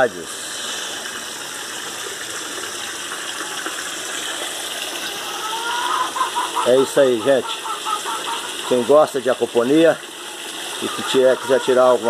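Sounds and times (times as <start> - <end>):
running water rushing: 0.0 - 12.0.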